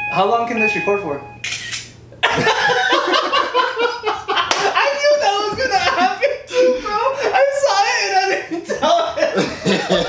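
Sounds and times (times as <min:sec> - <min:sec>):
young men laughing: 0:02.2 - 0:10.0
sharp slap: 0:04.5 - 0:04.8.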